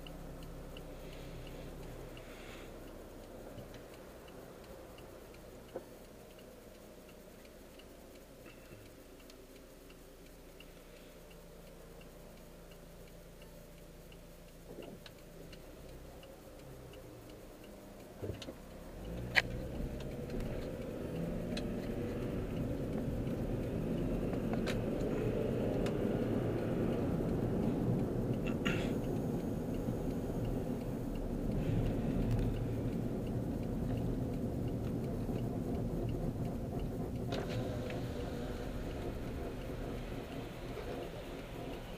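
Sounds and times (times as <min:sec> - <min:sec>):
car engine and road rumble: 0:00.0 - 0:41.9
faint regular ticking: 0:00.0 - 0:41.9
sharp clicks: 0:00.0 - 0:41.9.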